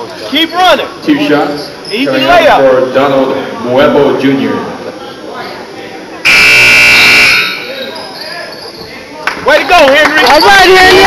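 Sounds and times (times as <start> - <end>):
low crowd chatter: 0.0 - 11.0
scoreboard buzzer horn tone: 6.2 - 7.8.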